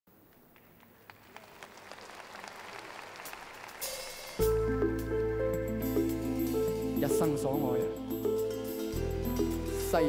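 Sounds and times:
audience applauding: 0.2s - 4.4s.

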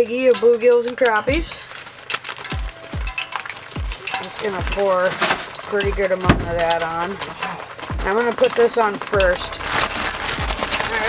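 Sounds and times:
background music: 0.0s - 11.0s
plastic bag crinkling: 0.0s - 11.0s
deep bass drum hits: 6.3s - 6.8s.

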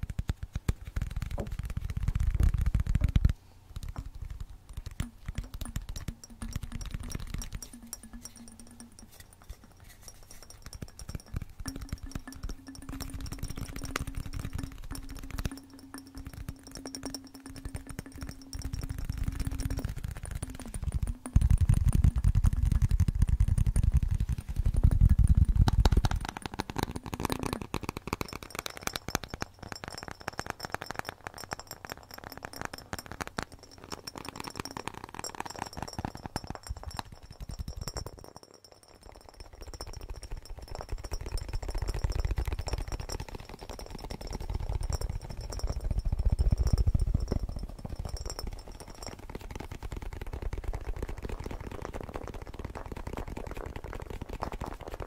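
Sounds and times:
fingertips tapping a bottle: 0.0s - 55.0s.

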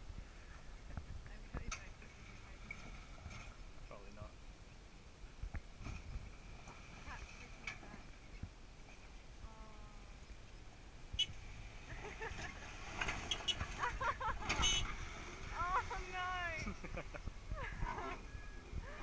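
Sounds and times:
distant engine low rumble: 0.0s - 19.0s
voices calling out: 9.0s - 19.0s.

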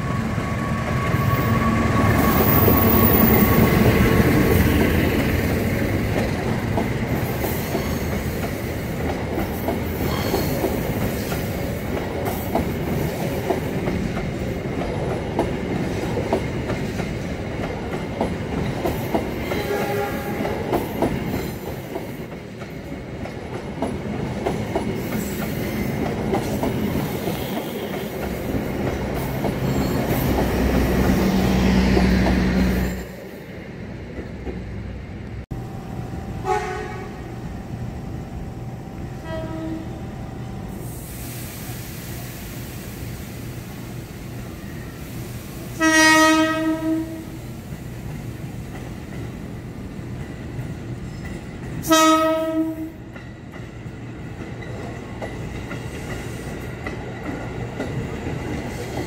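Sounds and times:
train wheel squeal: 0.0s - 4.6s, 7.2s - 8.8s, 9.5s - 11.6s, 24.9s - 28.6s, 29.2s - 33.4s
train wheels clattering on rails: 0.0s - 33.2s, 46.2s - 59.0s
diesel locomotive passing: 0.0s - 59.0s.

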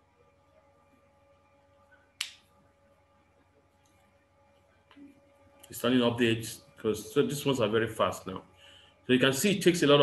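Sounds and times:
faint steady hum: 0.0s - 10.0s
sharp click: 2.2s - 2.5s.

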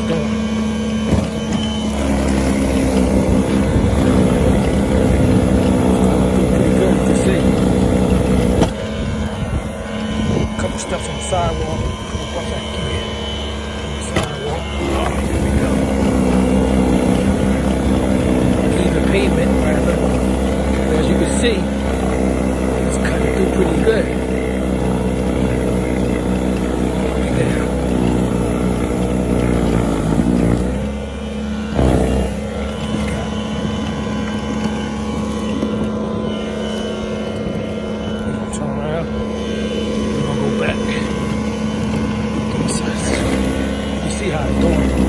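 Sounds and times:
snowblower motor whining: 0.0s - 45.0s.

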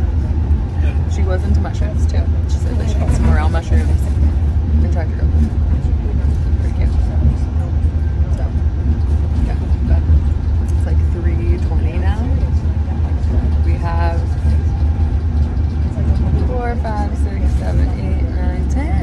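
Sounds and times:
train car low rumble: 0.0s - 19.0s.

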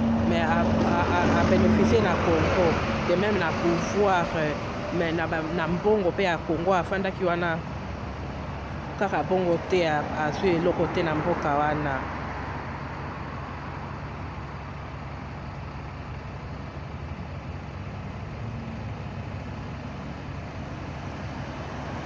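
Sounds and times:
distant road traffic rumble: 0.0s - 22.0s.

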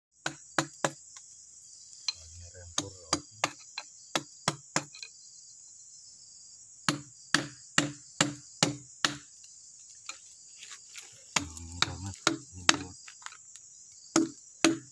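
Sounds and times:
mallet striking chisel into log: 0.2s - 1.0s, 2.8s - 5.0s, 6.9s - 9.3s, 11.4s - 13.0s, 14.1s - 14.9s.

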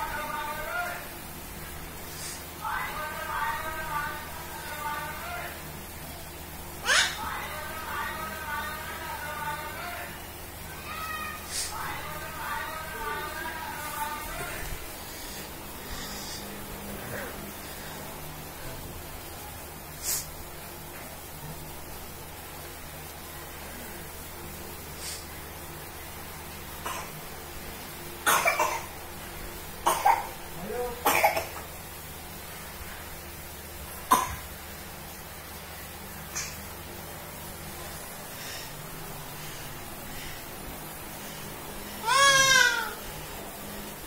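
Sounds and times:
baby vocalising: 6.8s - 7.2s, 42.0s - 43.0s
person coughing: 31.0s - 31.7s.

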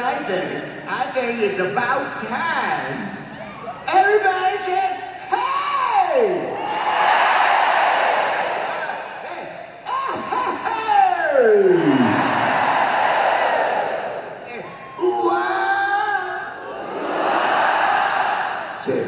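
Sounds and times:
crowd yelling and cheering: 3.2s - 19.0s.

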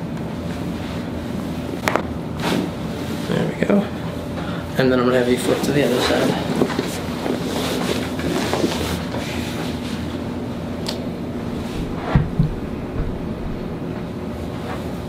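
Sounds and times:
room hum: 0.0s - 15.0s
clothing rustling: 11.1s - 15.0s
person shifting on padded table: 11.5s - 14.1s
soft thump: 11.7s - 13.8s.

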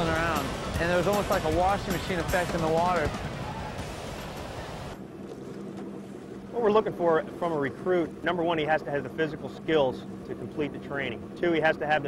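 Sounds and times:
ocean surf breaking: 0.0s - 5.0s.

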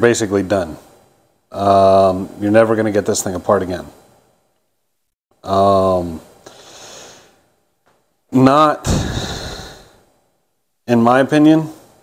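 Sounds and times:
man sighing: 8.8s - 10.0s.

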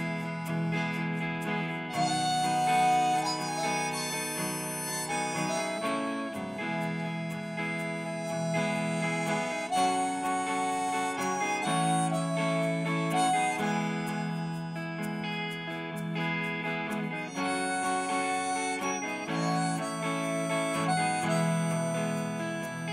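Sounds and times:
electric guitar: 0.0s - 22.9s
harmonica solo: 0.0s - 22.9s.

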